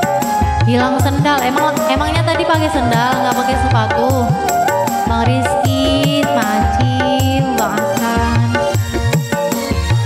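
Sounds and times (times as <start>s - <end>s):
hand drum beats bending in pitch: 0.0s - 10.0s
held instrumental notes: 0.0s - 10.0s.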